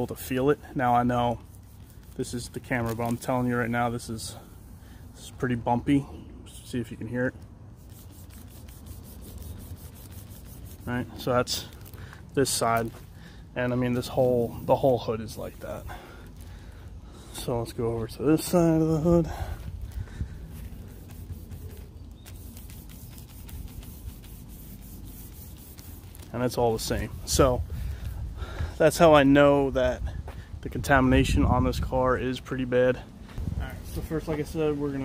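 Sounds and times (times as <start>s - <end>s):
plastic bag scratching over paint: 0.0s - 5.3s, 7.8s - 16.4s, 20.5s - 27.4s.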